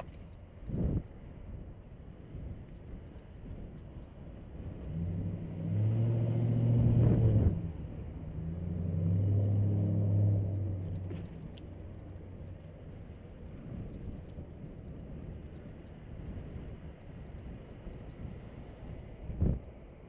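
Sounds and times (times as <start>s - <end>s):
wind and road noise: 0.0s - 20.0s
vehicle engines droning past: 4.5s - 17.0s.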